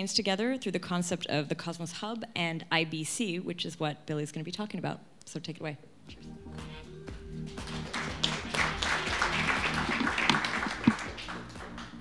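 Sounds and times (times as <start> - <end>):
background music: 5.9 - 12.0
audience applauding: 7.5 - 12.0.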